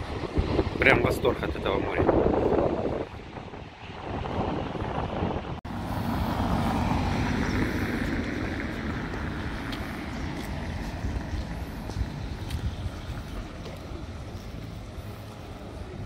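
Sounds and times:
street traffic noise: 0.0 - 16.0
wind on microphone: 0.0 - 16.0.

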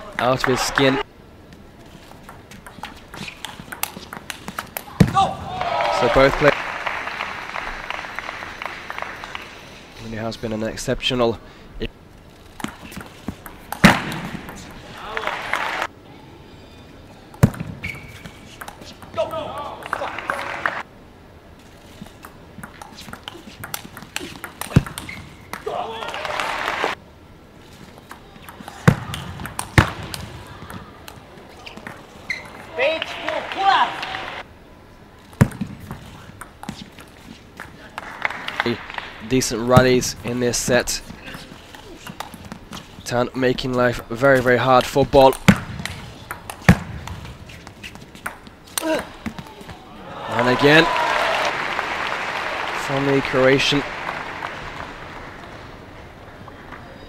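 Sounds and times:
faint arena background: 0.0 - 57.0
loud table tennis smash: 13.8 - 14.6
ping pong ball clicks: 22.2 - 25.6
crowd noise: 28.1 - 34.5, 49.1 - 57.0.

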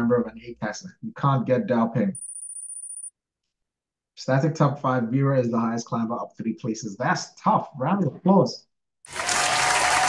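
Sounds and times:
high-pitched electronic chime: 2.2 - 3.1.

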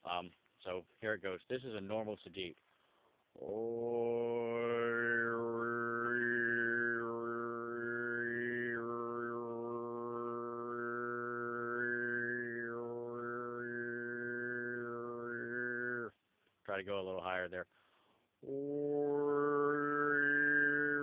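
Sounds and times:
throat singing: 3.4 - 16.1, 18.4 - 21.0.

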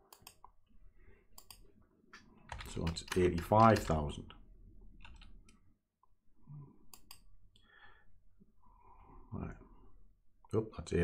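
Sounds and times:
computer input clicks: 2.5 - 4.0.

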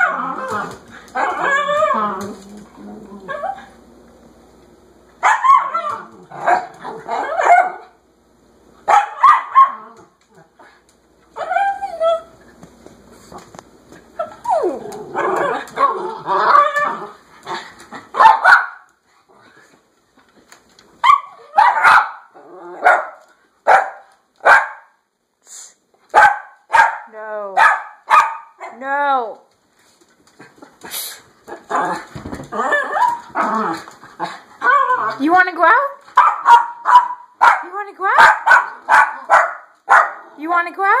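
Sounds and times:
small dog yapping: 5.2 - 7.8, 8.9 - 10.0, 38.2 - 40.2.

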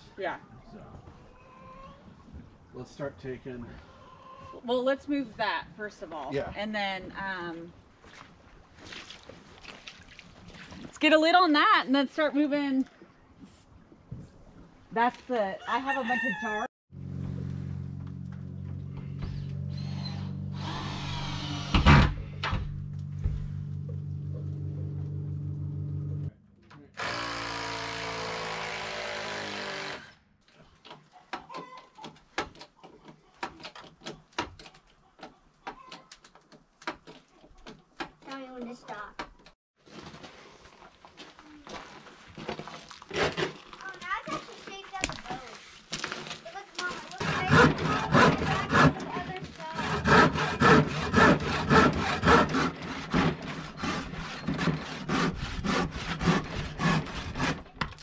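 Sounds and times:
handsaw cutting wood: 27.0 - 30.2, 47.1 - 57.8
tools and wood knocking: 30.5 - 39.6.

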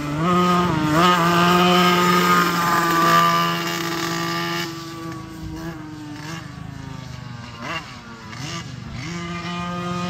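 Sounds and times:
kart engine at high revs: 0.0 - 10.0.

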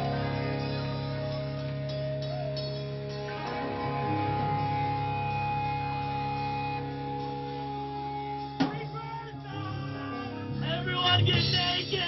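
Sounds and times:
electric guitar ringing notes: 0.0 - 12.0
live band playing: 0.0 - 12.0.

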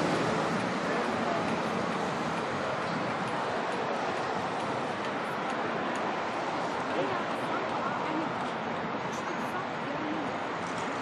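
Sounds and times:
wind: 0.0 - 11.0.

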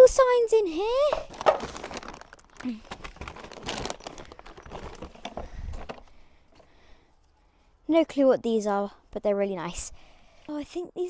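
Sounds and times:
items knocking in plastic box: 1.0 - 6.0.

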